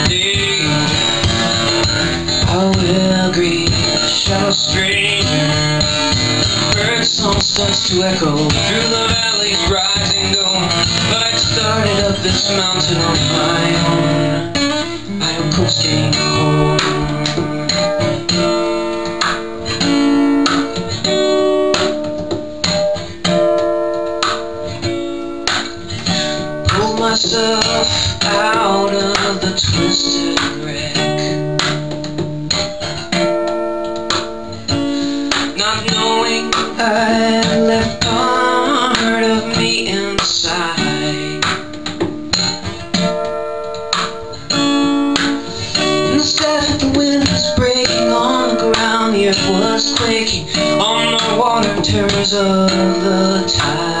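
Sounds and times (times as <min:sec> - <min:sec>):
acoustic guitar strummed chords: 0:00.0 - 0:54.0.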